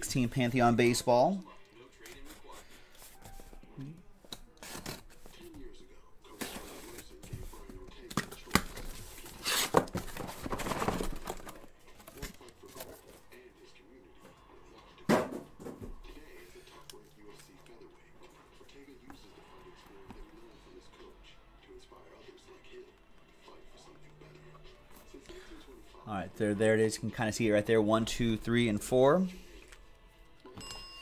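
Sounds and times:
boxes being handled: 2.1 - 5.6, 6.3 - 13.2.

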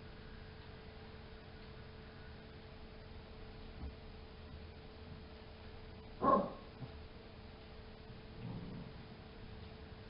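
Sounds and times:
dog bark: 6.2 - 6.7.

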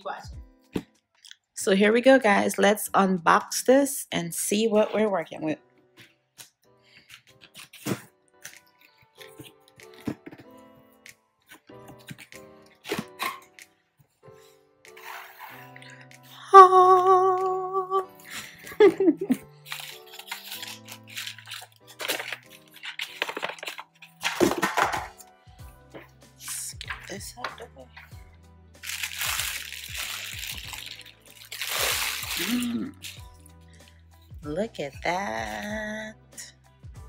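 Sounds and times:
background music with singing: 13.2 - 19.6, 32.4 - 37.0
plastic wrap crinkling: 18.2 - 24.9, 28.8 - 33.4.

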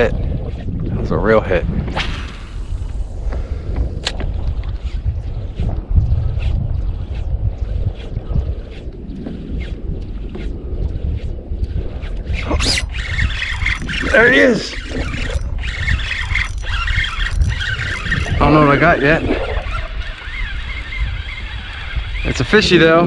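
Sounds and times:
wind rumbling on microphone: 0.0 - 23.0
water sounds: 2.7 - 22.7
fishing reel clicks: 10.9 - 18.8, 19.7 - 22.6.

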